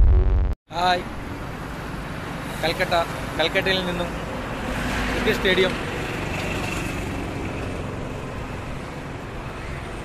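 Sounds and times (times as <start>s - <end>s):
city street traffic: 0.7s - 10.0s.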